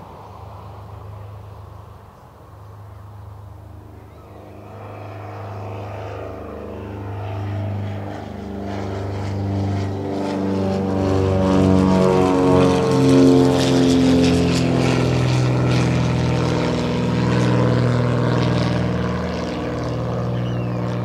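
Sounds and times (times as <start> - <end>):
propeller aircraft engines droning: 0.0 - 21.0.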